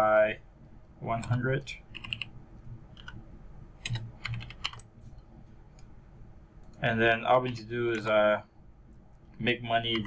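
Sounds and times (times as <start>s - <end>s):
keyboard typing: 1.1s - 2.3s, 2.9s - 3.2s, 3.8s - 4.9s, 9.8s - 10.0s.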